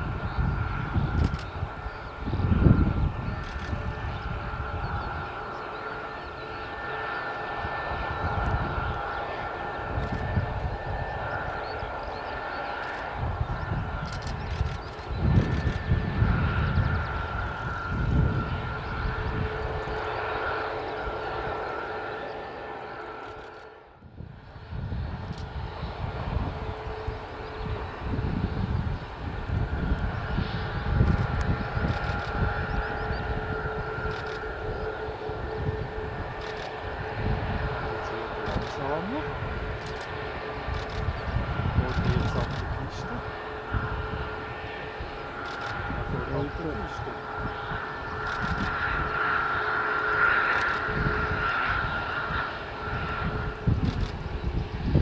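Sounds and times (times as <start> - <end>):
jet engines whining while taxiing: 0.0 - 55.0
low rumble: 0.0 - 55.0.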